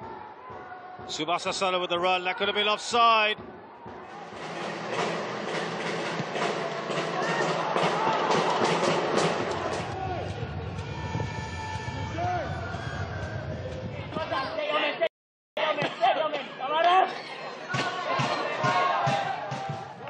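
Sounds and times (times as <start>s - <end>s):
stadium crowd din: 0.0s - 20.0s
crowd shouts: 6.5s - 10.6s, 16.7s - 20.0s.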